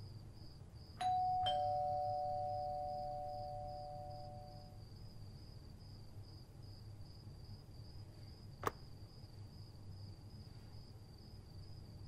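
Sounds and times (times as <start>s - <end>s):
two-note doorbell chime: 1.0s - 4.8s.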